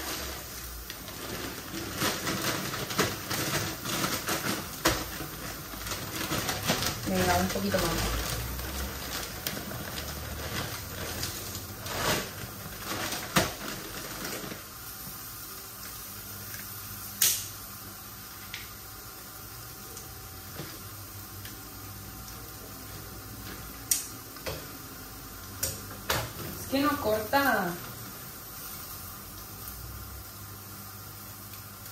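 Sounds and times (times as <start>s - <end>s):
dry pasta rattling from a bag: 0.0s - 16.6s
kitchen tongs and scissors clicks: 17.2s - 17.5s.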